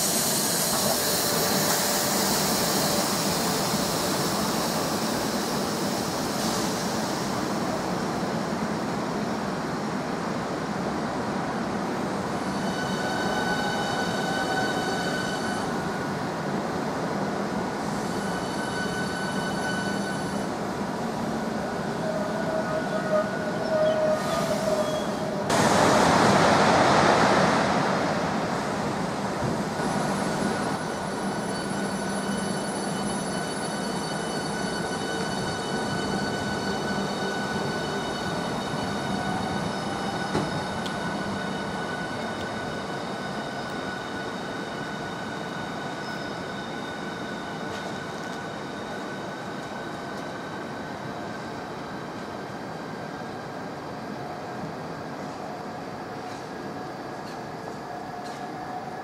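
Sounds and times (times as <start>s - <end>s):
train brake squeal: 0.0s - 7.4s, 12.3s - 16.1s, 17.8s - 20.6s, 21.4s - 25.5s, 30.1s - 51.5s, 56.2s - 59.0s
electric train whine: 0.0s - 10.1s, 11.5s - 59.0s
loud rushing noise: 25.5s - 29.2s.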